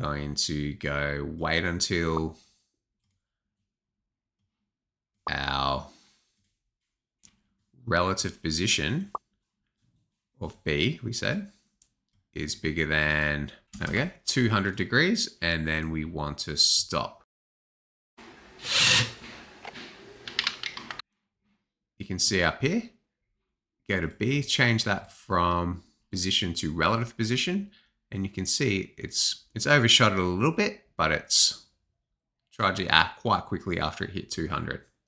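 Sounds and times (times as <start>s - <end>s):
robot motors whirring: 18.6s - 19.2s.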